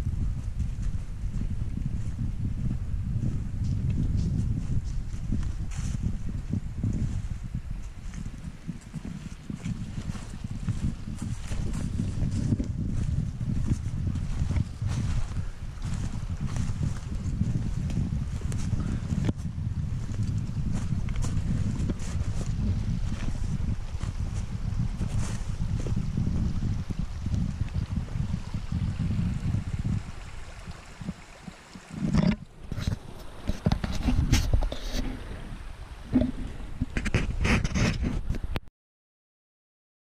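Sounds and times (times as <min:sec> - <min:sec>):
wind buffeting microphone: 0:00.0 - 0:38.6
camera handling bumps: 0:32.1 - 0:35.0.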